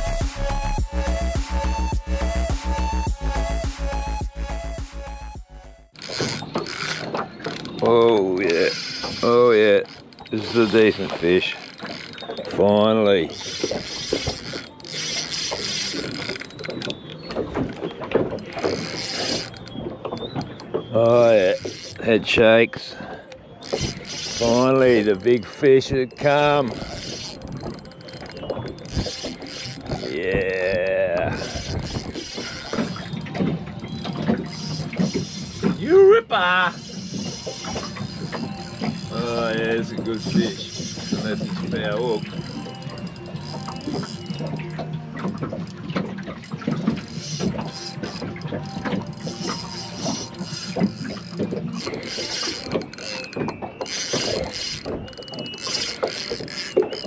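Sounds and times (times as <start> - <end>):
fishing reel ratcheting clicks: 6.0 - 7.7, 8.4 - 17.0, 18.4 - 19.7, 21.2 - 22.0, 23.6 - 25.4, 26.1 - 30.2, 31.2 - 33.1, 34.4 - 35.8, 36.7 - 44.6, 47.0 - 57.0.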